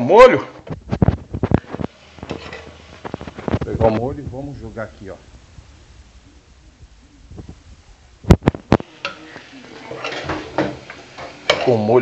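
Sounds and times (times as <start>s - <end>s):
cookware knocking and clinking: 9.9s - 11.8s.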